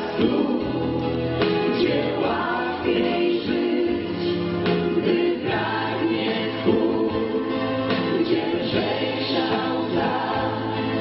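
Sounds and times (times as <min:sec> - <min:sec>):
men and women singing: 0:00.0 - 0:11.0
musical accompaniment: 0:00.0 - 0:11.0.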